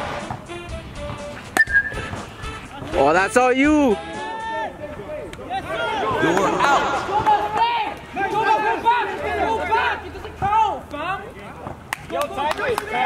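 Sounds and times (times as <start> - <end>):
men talking and calling out: 0.9 - 13.0.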